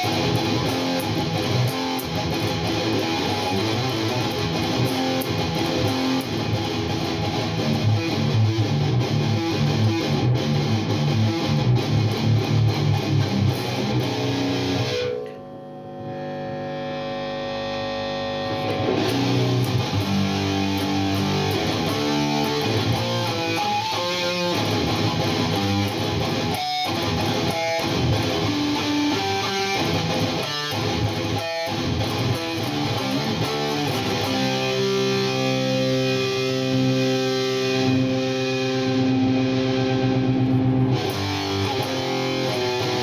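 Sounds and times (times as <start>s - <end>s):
distorted electric guitar note: 0.0s - 43.0s
amplifier hum: 13.8s - 21.4s, 38.9s - 41.0s.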